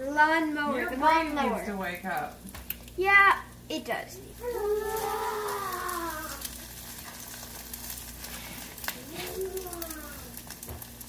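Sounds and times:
pancakes sizzling in a pan: 0:00.7 - 0:11.0.

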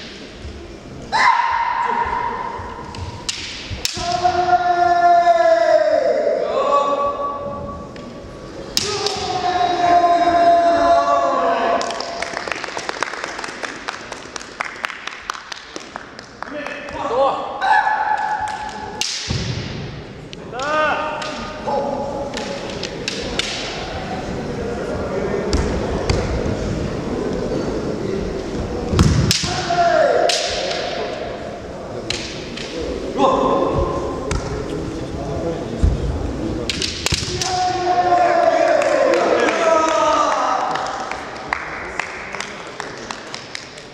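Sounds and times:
person shouting long kiai: 0:01.1 - 0:02.6, 0:03.8 - 0:07.4
bamboo swords clacking: 0:02.2 - 0:04.5, 0:08.7 - 0:09.4, 0:18.1 - 0:24.0, 0:28.9 - 0:31.4, 0:32.0 - 0:33.0, 0:36.6 - 0:37.8.

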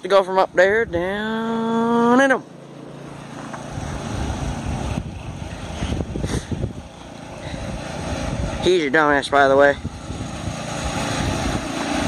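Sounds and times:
lawn mower engine running: 0:00.0 - 0:12.0
wind buffeting microphone: 0:00.3 - 0:01.4, 0:03.1 - 0:12.0.

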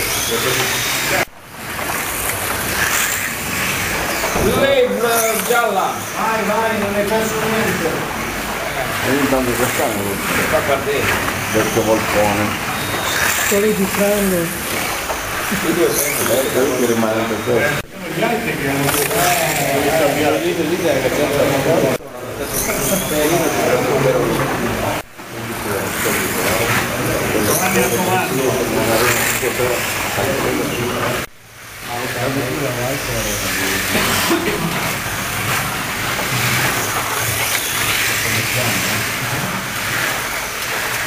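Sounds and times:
people talking: 0:00.0 - 0:01.3, 0:04.3 - 0:36.8, 0:37.9 - 0:40.0
slot car electric motors: 0:00.0 - 0:41.0.

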